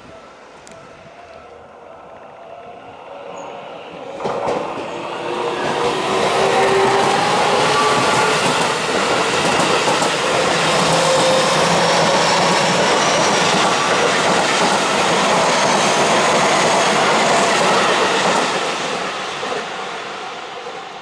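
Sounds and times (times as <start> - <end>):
electric train passing at speed: 0.0 - 21.0.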